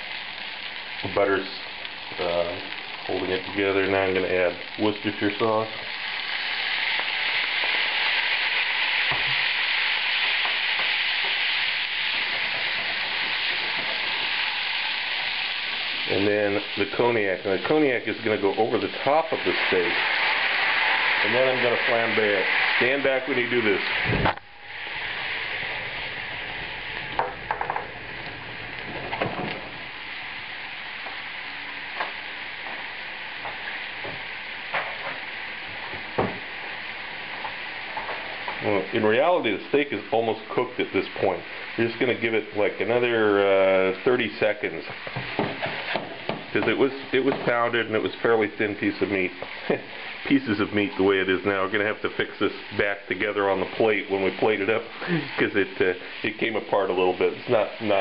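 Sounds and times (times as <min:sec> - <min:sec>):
sharp pops and crackles: 0:00.0 - 0:38.8, 0:44.2 - 0:48.1
steaks sizzling in butter: 0:00.0 - 0:58.0.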